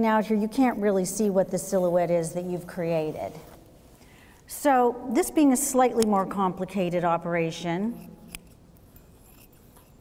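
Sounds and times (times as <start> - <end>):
scissors snipping fabric: 7.9 - 8.6
sharp scissors click: 7.9 - 8.6.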